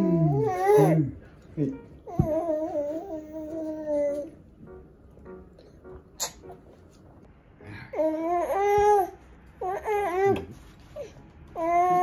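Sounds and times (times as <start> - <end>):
baby humming: 7.9 - 10.5.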